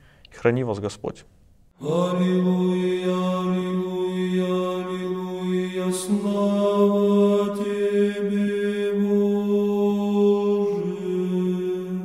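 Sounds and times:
low voices chanting: 0:01.8 - 0:12.0.

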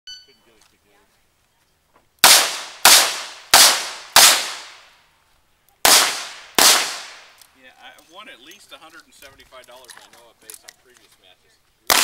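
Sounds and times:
handgun shots echoing: 0:02.2 - 0:04.8, 0:05.8 - 0:07.3.

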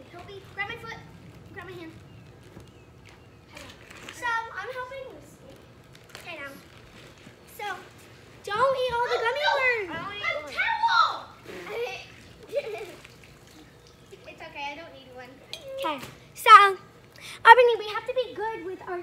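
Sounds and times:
children calling and chattering: 0:07.5 - 0:19.0.

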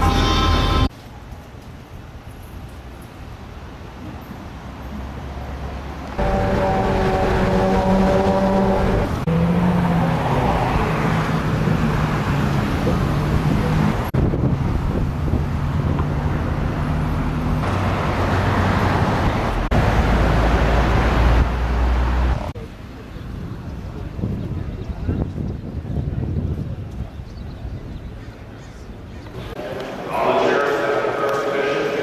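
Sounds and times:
vehicle engines humming: 0:00.0 - 0:01.0, 0:02.6 - 0:25.0
road noise: 0:00.0 - 0:32.0.

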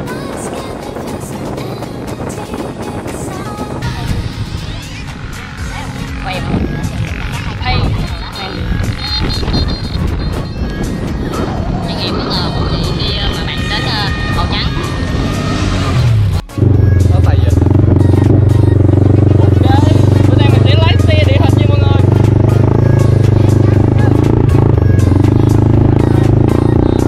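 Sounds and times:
wind: 0:00.0 - 0:24.4
quad bike engine drone: 0:00.0 - 0:27.0
voices: 0:01.0 - 0:16.1, 0:16.9 - 0:27.0.

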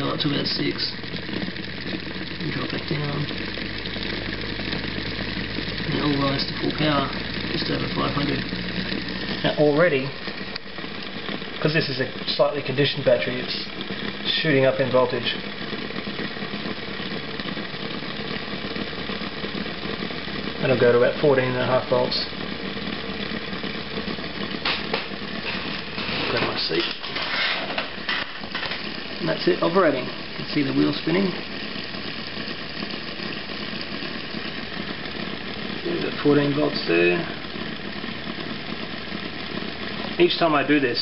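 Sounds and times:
pulsing mechanical hum: 0:00.0 - 0:41.0
rotor wheel whirring: 0:00.0 - 0:41.0.

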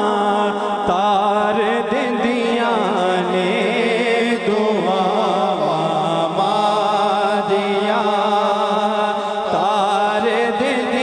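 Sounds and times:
man singing ornamented melody: 0:00.0 - 0:11.0.

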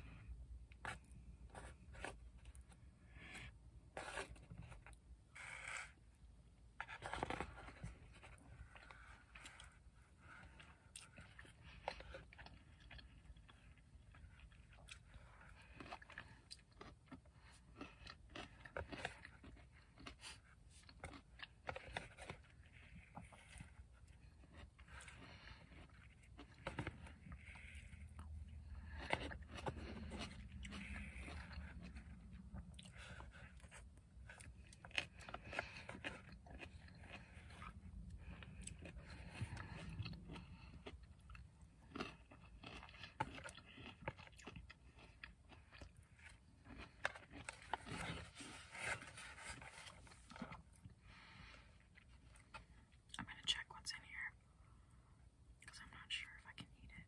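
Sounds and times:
chewing and biting food: 0:00.0 - 0:53.4.

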